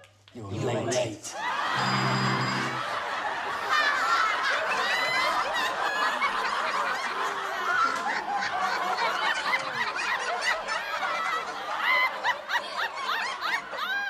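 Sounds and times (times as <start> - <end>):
audience laughing: 0.6 - 14.0.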